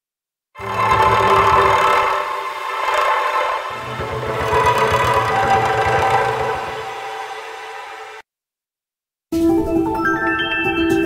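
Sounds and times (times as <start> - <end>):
fast low pulsing: 0.6 - 8.2
swirling cello tones: 0.6 - 8.2.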